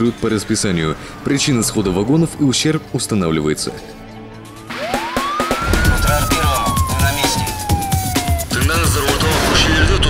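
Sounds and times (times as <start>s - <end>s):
siren wail: 4.2s - 9.2s
music with thumping beat: 4.7s - 9.4s.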